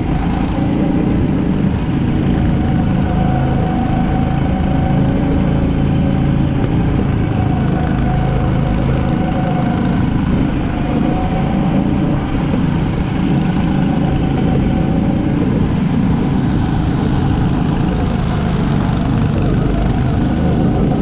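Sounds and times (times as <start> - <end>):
faint wavering tone: 0.0 - 18.8
go-kart engine running: 0.0 - 21.0.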